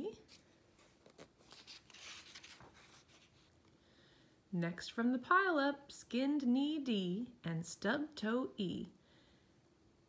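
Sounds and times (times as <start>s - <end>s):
paper page turning: 0.2s - 3.6s.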